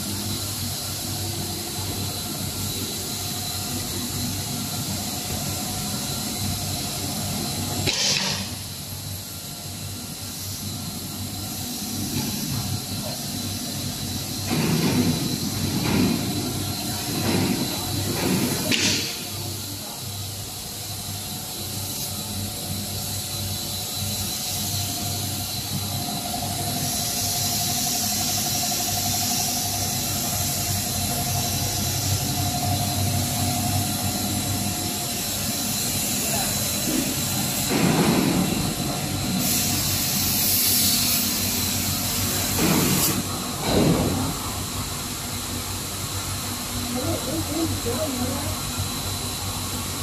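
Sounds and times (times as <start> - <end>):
hiss: 0.0 - 50.0
machine whine: 0.0 - 50.0.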